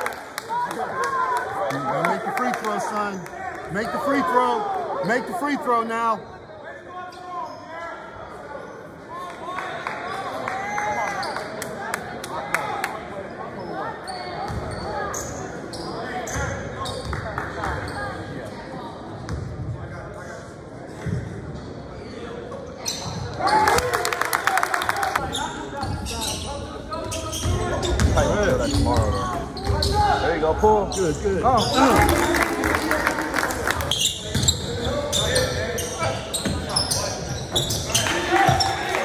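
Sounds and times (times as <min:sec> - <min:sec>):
spectators' voices: 0:00.0 - 0:39.0.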